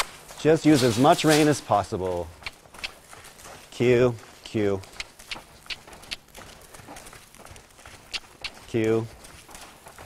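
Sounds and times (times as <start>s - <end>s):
horse trotting on dirt: 0.0s - 10.0s.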